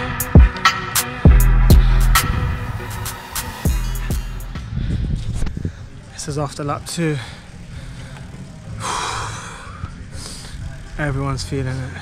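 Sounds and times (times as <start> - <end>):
man breathing hard: 1.6 - 3.0, 3.6 - 6.1, 7.2 - 10.8.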